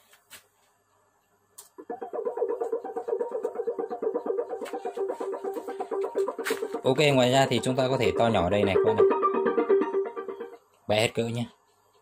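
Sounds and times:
music with sustained note: 1.9s - 10.7s.

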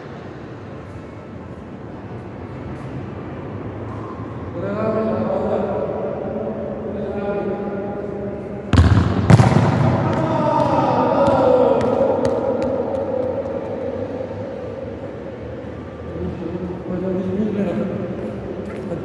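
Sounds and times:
ball kicked hard: 8.7s - 10.2s
ball bouncing on hard floor: 8.7s - 13.5s.

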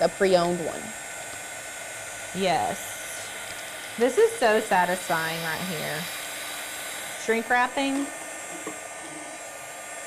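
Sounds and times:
heat gun running: 0.0s - 10.0s.

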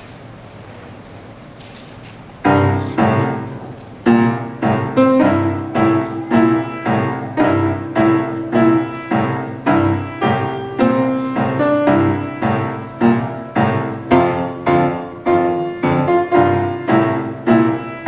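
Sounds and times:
grand piano chords: 2.4s - 18.0s.

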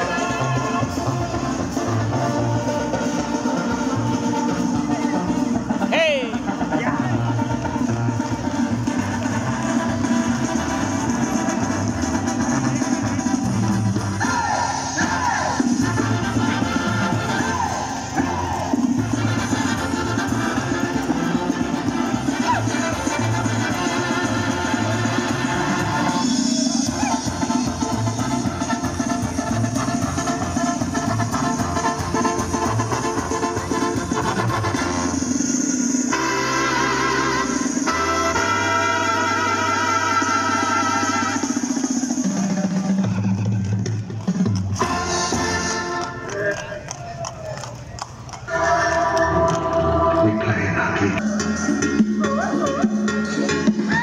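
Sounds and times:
brass band music with drums: 0.0s - 54.0s.

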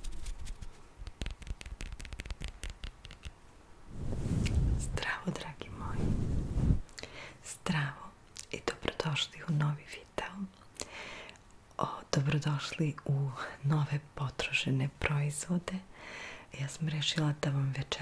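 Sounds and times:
woman whispering: 4.8s - 6.0s, 7.4s - 10.7s, 11.8s - 15.9s, 16.5s - 18.0s.

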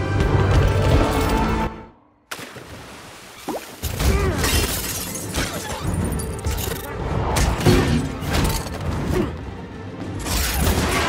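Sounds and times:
film score music: 0.0s - 2.4s, 3.8s - 11.0s
glass shattering: 4.4s - 6.7s.

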